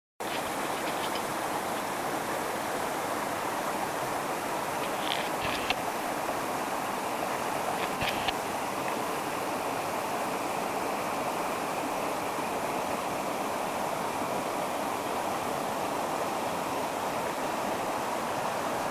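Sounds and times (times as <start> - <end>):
river flowing: 0.2 - 18.9.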